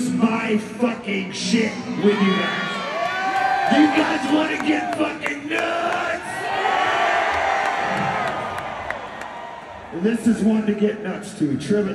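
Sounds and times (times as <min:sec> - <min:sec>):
crowd cheering and yelling: 0:01.2 - 0:11.0.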